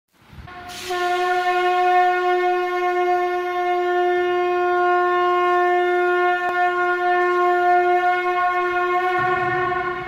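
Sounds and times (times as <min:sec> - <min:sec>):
conch shell blown: 0:00.5 - 0:10.0.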